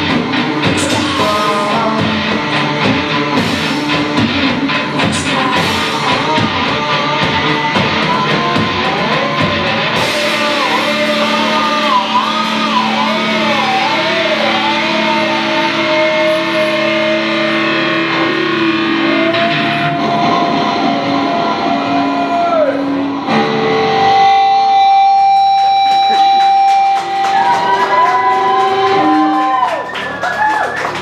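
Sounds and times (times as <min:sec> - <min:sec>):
electric guitar lead with bends: 0:00.0 - 0:29.9
hard rock band playing: 0:00.0 - 0:30.2.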